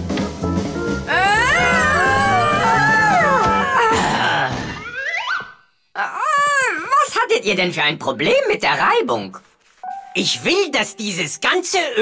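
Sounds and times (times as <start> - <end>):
cartoon voices gliding calls: 1.1 - 5.1.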